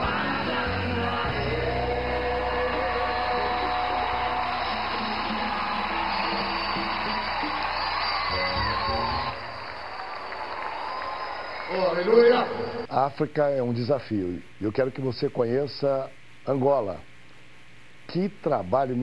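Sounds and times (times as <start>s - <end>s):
gospel band and singing: 0.0s - 9.5s
crowd cheering: 2.3s - 12.9s
crowd clapping: 3.4s - 12.9s.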